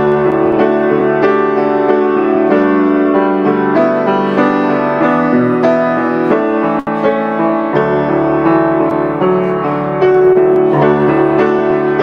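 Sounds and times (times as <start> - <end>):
piano playing sustained chords: 0.0 - 12.0.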